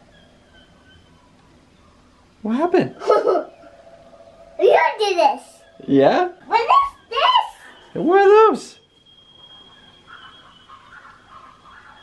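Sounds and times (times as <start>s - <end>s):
soft animal calls: 9.4s - 12.0s.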